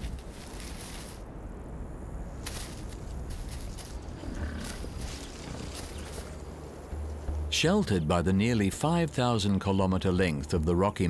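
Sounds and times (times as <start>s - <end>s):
steady low rumble: 0.0s - 11.0s
bison grunting: 4.1s - 6.1s.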